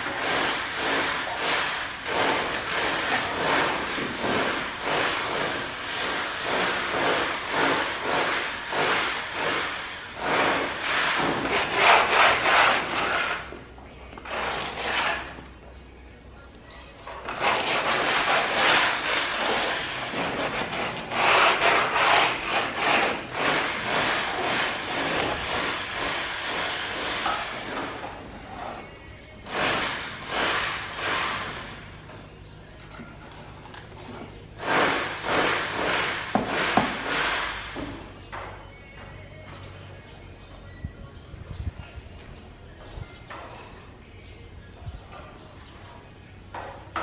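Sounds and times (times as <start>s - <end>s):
float scraping cement render: 0.0s - 15.6s, 17.2s - 31.8s.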